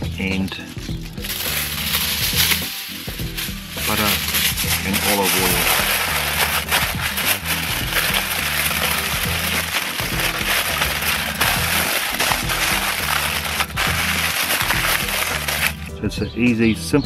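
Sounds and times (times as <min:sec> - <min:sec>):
background music with bass line: 0:00.0 - 0:17.0
aluminium foil crinkling: 0:00.4 - 0:15.9.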